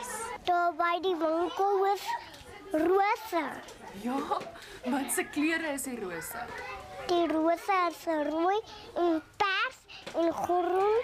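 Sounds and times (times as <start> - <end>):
young child speaking: 0.0 - 3.7, 6.2 - 11.0.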